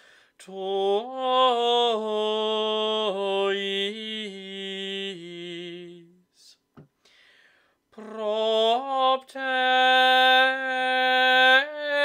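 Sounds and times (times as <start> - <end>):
solo voice singing chant: 0.4 - 6.6, 8.0 - 12.0.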